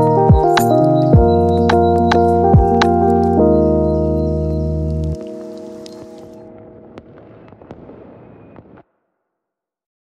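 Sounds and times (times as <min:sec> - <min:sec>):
vinyl crackle with pops: 0:04.2 - 0:08.9.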